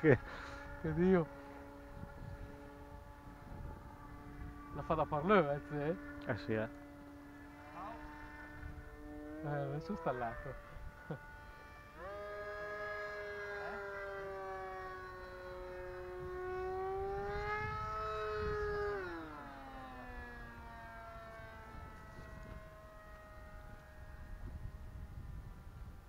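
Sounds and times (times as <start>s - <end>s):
model plane motor whine: 0.0s - 26.0s.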